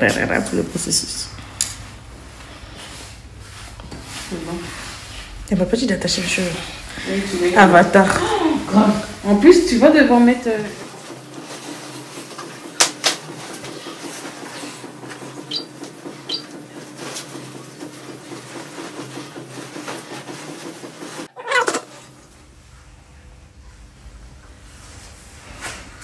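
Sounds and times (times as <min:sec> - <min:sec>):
steady low hum: 0:00.0 - 0:16.8, 0:22.0 - 0:26.0.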